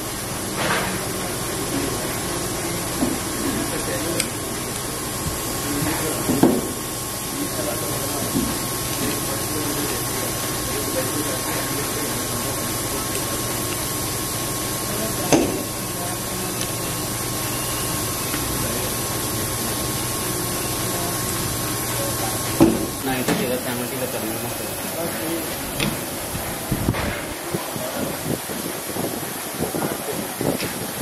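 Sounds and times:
constant hiss: 0.0 - 31.0.

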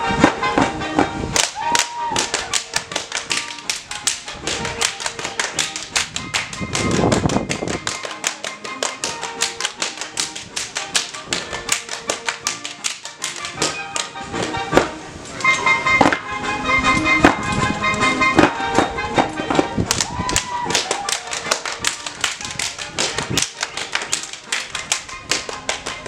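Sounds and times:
waltz music: 0.0 - 26.0
hand slaps and claps: 1.4 - 14.1, 19.6 - 26.0.

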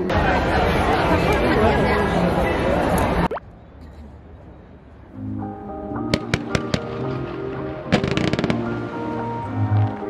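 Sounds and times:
background music: 5.1 - 10.0
fireworks crackling: 7.9 - 9.0.

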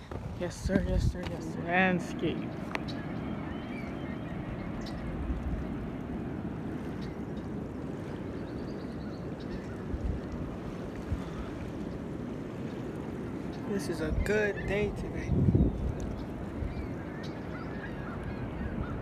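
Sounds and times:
small waves lapping on rocks: 0.0 - 3.0, 4.9 - 16.5.

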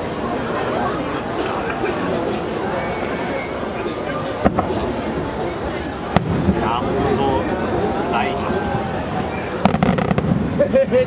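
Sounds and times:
spectators' voices: 0.0 - 11.0.

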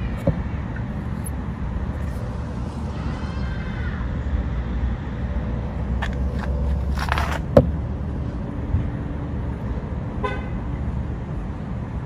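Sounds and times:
traffic rumble: 0.0 - 12.0
car horn toot: 10.2 - 10.6.

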